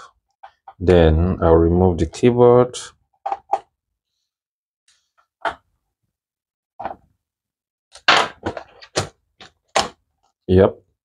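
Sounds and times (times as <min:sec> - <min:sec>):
plastic keyboard clicks and knocks: 0:08.0 - 0:10.0.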